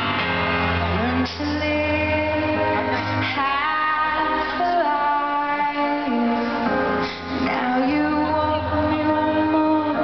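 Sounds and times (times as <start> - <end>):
amplified piano accompaniment: 0.0 - 10.0
woman singing a ballad: 0.8 - 10.0.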